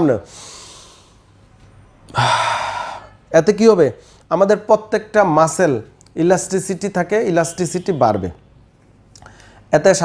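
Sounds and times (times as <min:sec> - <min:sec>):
man exhaling hard: 0:02.1 - 0:03.2.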